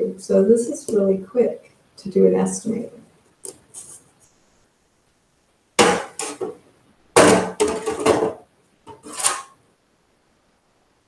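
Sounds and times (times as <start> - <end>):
writing board knocks and clatter: 5.8 - 6.6, 7.2 - 9.5.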